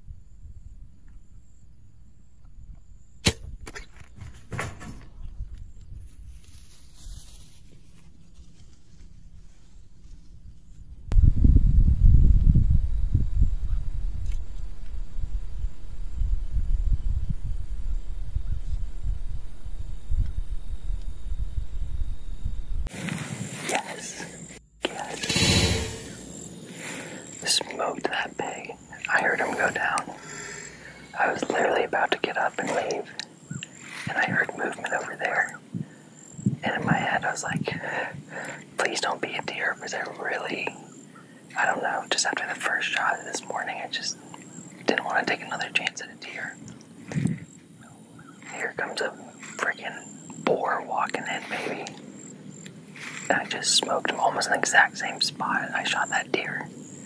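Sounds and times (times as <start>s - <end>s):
bow shot: 3.2s - 5.1s, 25.1s - 26.6s.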